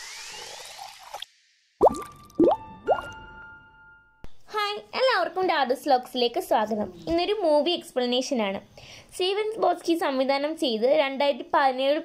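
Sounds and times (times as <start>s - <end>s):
upward-gliding plops with ringing tone: 1.8s - 3.3s.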